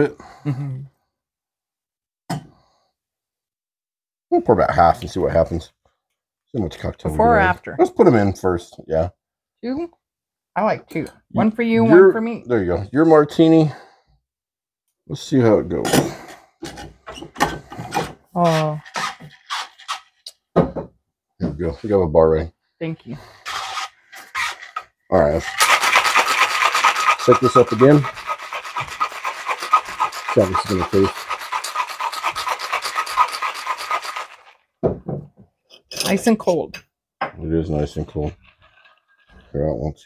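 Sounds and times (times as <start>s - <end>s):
cocktail pouring into glass: 25.2s - 34.5s.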